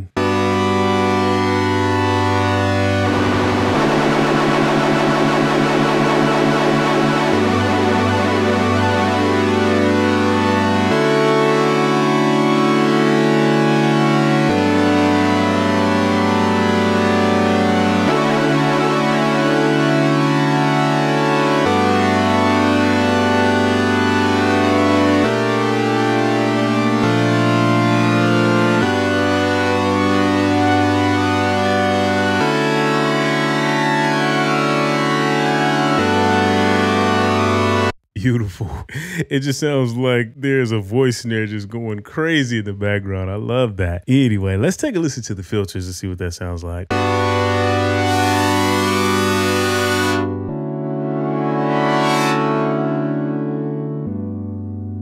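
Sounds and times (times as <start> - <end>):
synthesizer chords: 0.0 - 38.0, 46.9 - 55.0
wobbling synth pitch sweep: 2.0 - 11.4, 16.0 - 22.5.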